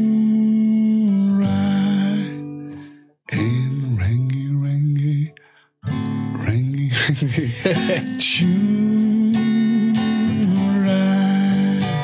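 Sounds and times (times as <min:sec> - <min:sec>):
acoustic guitar chords: 0:00.0 - 0:12.0
man's voice: 0:06.4 - 0:12.0.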